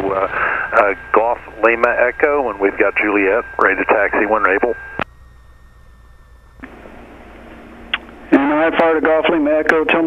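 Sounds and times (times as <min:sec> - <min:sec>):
radio transmission click: 0:00.0 - 0:05.1
radio receiver hiss: 0:00.0 - 0:05.2, 0:06.6 - 0:09.9
low steady hum: 0:00.0 - 0:10.0.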